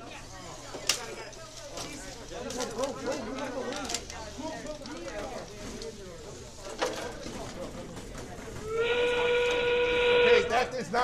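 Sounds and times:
loud factory whistle: 8.6s - 10.7s.

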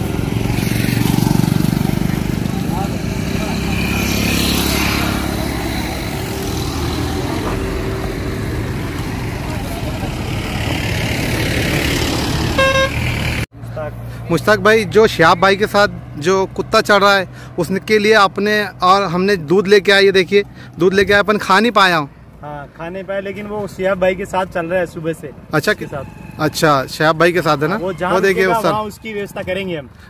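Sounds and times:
vehicle engine running: 0.0s - 14.3s
vehicle horn toot: 12.5s - 13.2s, 25.8s - 26.9s.

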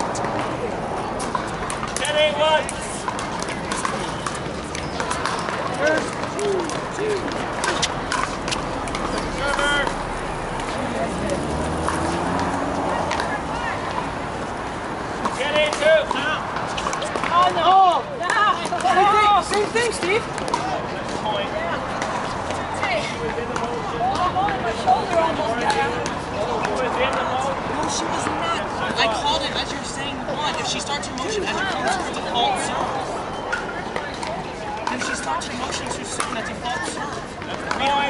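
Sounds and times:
people chattering: 0.0s - 38.0s.

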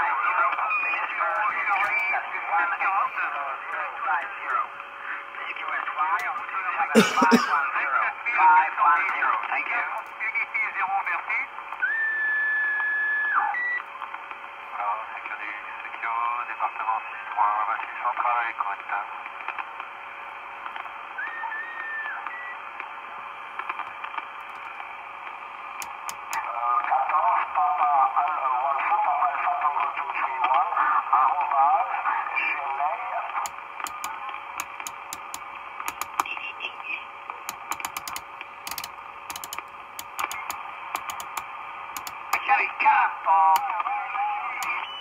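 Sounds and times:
radio band hiss: 0.0s - 12.0s, 13.0s - 45.0s
selector knob clicks: 25.8s - 26.4s, 33.8s - 36.3s, 37.5s - 42.4s
garbled radio speech: 36.2s - 37.1s.

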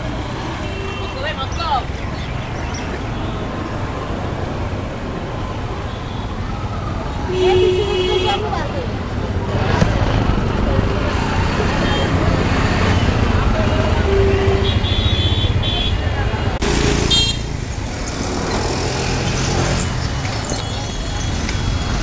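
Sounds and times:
passing vehicle engines: 0.0s - 22.0s
many people's voices: 6.7s - 17.1s
horn honks: 7.3s - 8.7s, 13.8s - 16.2s, 17.0s - 17.5s.

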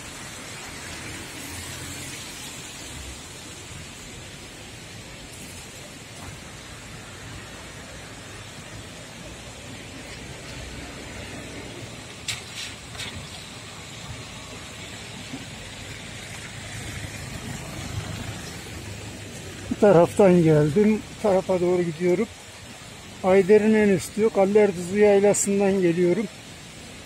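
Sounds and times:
cars on wet road: 0.0s - 27.0s
rain: 0.0s - 27.0s.

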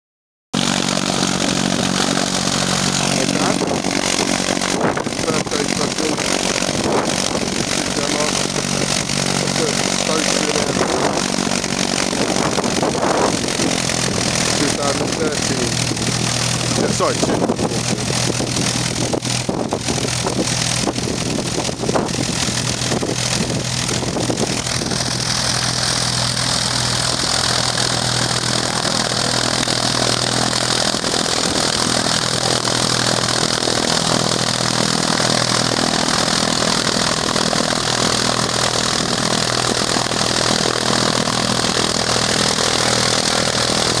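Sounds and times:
light aircraft engine running: 0.6s - 44.0s.

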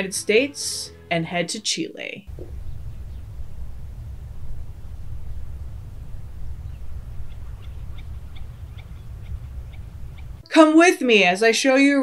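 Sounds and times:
low wind rumble: 2.3s - 10.4s.

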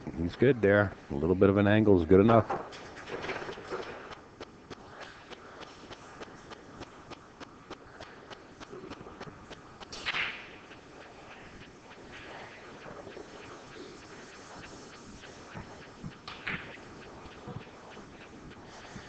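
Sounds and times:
loud hiss: 2.6s - 19.0s
faint regular clicks: 2.8s - 13.6s.

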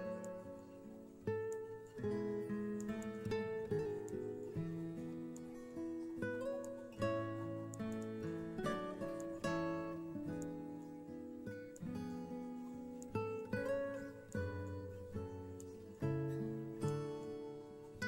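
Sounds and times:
plucked acoustic guitar: 0.0s - 18.0s.

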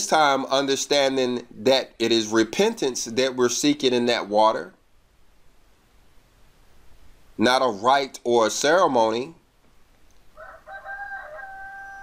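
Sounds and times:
pitched animal call: 10.4s - 12.0s.

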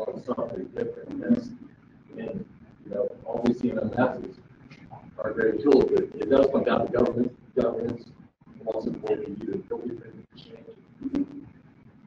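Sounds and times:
person murmuring: 0.0s - 1.6s, 2.2s - 4.3s, 5.0s - 8.0s, 8.7s - 11.4s.

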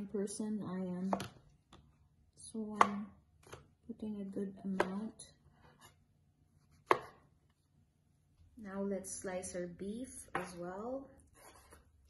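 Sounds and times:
knife chopping onto wooden board: 2.8s - 3.6s, 6.8s - 7.2s.

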